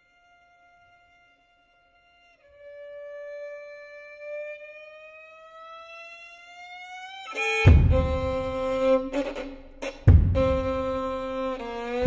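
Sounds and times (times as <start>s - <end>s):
violin note sliding upward: 5.0s - 12.0s.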